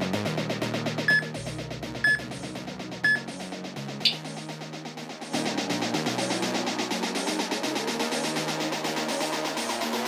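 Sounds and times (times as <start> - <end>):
background music with steady beat: 0.0 - 10.0
high timer beeps: 1.1 - 1.3, 2.0 - 2.2.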